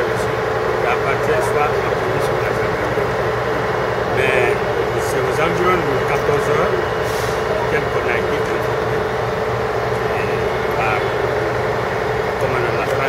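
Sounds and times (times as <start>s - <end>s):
indistinct voices talking: 0.0s - 13.0s
vehicle engine drone: 0.0s - 13.0s.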